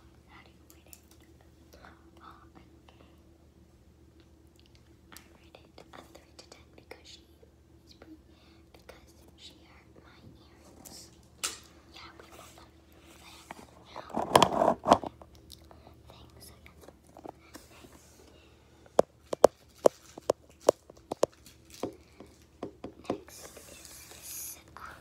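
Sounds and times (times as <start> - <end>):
girl whispering: 1.7 - 3.2, 5.2 - 7.3, 7.9 - 11.1, 11.9 - 14.2, 15.8 - 17.9, 23.0 - 25.0.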